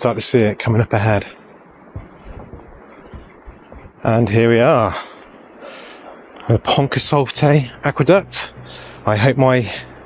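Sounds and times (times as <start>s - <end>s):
wind noise on microphone: 1.6s - 4.5s
footsteps on pavement: 1.9s - 4.0s.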